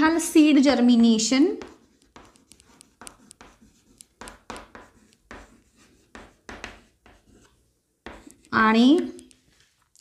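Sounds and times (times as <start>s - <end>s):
chalk scratching on a chalkboard: 0.9s - 9.5s.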